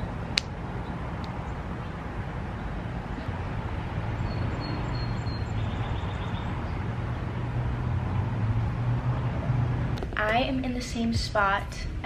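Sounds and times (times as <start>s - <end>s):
birds chirping: 0.0s - 7.5s
low outdoor hum: 0.0s - 12.0s.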